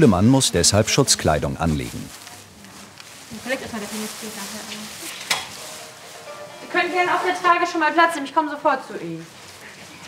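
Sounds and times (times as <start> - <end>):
plastic gown crinkling: 0.6 - 10.0.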